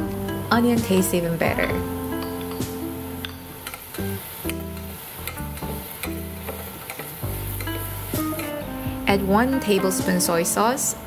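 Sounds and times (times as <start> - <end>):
background music: 0.0 - 11.0
onion sizzling in butter: 0.1 - 10.3.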